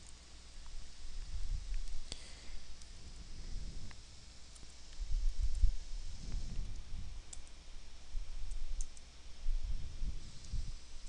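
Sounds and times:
faint sharp clicks: 0:06.7 - 0:07.6, 0:08.5 - 0:09.1.

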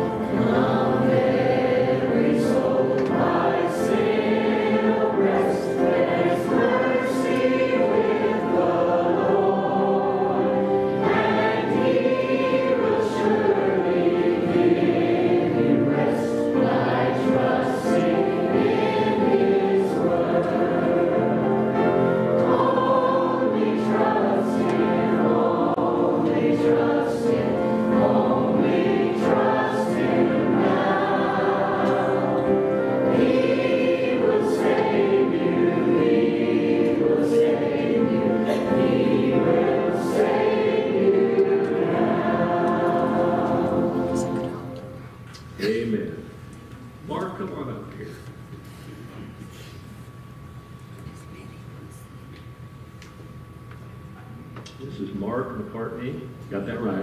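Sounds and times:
group singing gospel hymn: 0:00.0 - 0:45.1.

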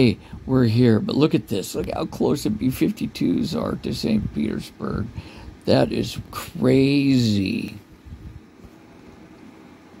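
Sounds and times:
faint room tone hiss: 0:00.0 - 0:10.0.

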